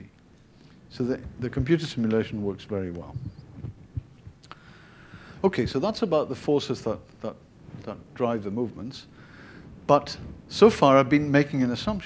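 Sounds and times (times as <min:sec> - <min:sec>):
faint room hum: 0:00.0 - 0:12.0
soft low thuds: 0:03.0 - 0:04.4.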